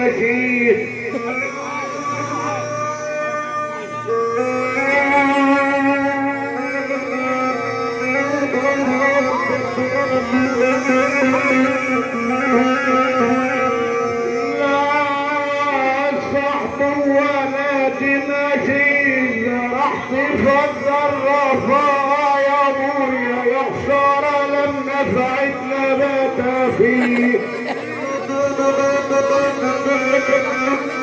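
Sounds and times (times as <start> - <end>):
sustained folk instrument notes: 0.0 - 31.0.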